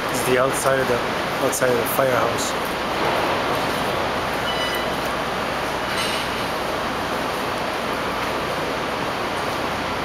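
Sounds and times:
city street noise: 0:00.0 - 0:10.0
faint high squeal: 0:04.4 - 0:05.0.

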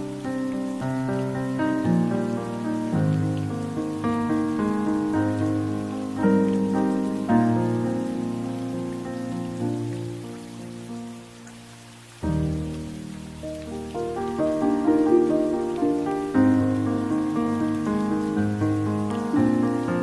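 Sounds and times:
gentle instrumental music: 0:00.0 - 0:20.0
rain hissing: 0:00.0 - 0:20.0.

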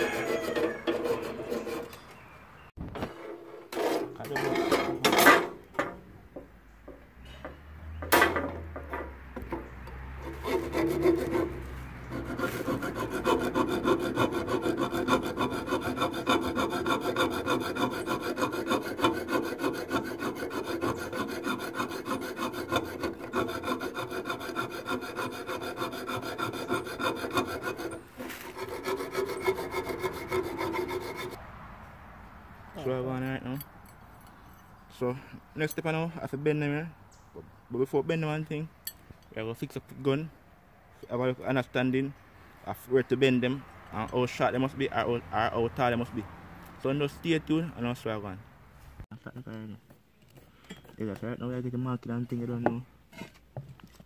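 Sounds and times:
hacksaw sawing metal: 0:00.0 - 0:02.0, 0:03.6 - 0:05.5, 0:10.1 - 0:31.4
sharp metal knocks: 0:08.0 - 0:09.7.

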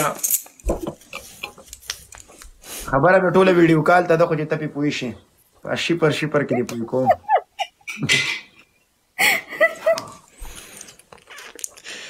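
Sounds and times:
people laughing: 0:06.3 - 0:10.3.

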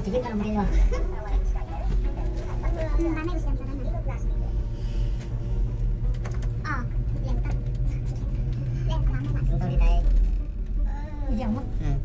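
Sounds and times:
gondola low rumble: 0:00.0 - 0:12.0
passengers talking quietly: 0:00.0 - 0:12.0.

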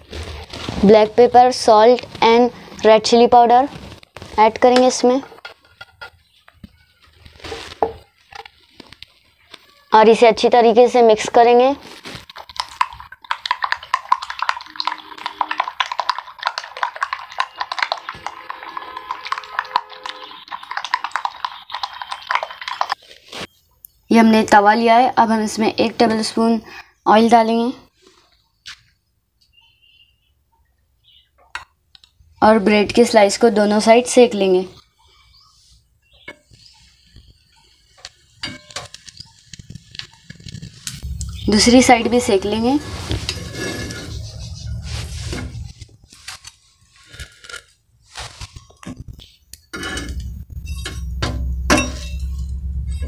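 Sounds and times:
utensil beating egg in glass bowl: 0:11.4 - 0:23.0.

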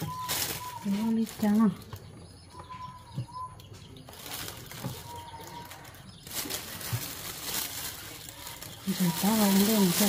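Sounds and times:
plastic bag rustling: 0:00.0 - 0:02.0, 0:04.0 - 0:10.0.

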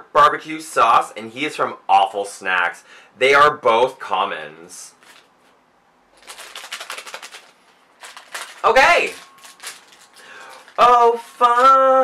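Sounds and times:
plastic package crinkling: 0:04.9 - 0:05.5, 0:06.1 - 0:12.0.

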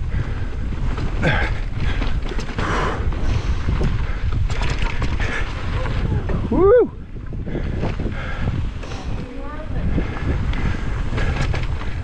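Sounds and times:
bike tyres on dirt trail: 0:00.0 - 0:12.0
wind rumble: 0:00.0 - 0:12.0
person whooping: 0:06.5 - 0:07.0.

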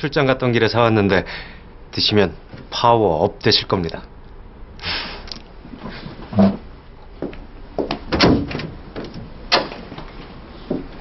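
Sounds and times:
door knocks and clunks: 0:07.8 - 0:09.9
heavy door thump: 0:07.9 - 0:09.9.

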